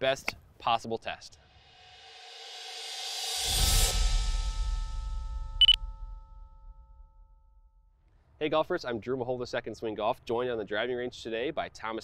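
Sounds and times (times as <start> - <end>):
rising whoosh: 1.5 - 7.3
deep boom: 3.5 - 8.0
bright ringing ding: 5.5 - 7.8.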